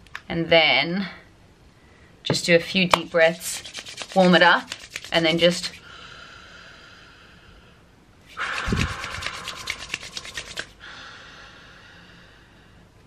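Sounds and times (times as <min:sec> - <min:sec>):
palms rubbing against skin: 0:02.8 - 0:05.8, 0:08.2 - 0:10.8
deep breath through cupped hands: 0:05.8 - 0:12.9.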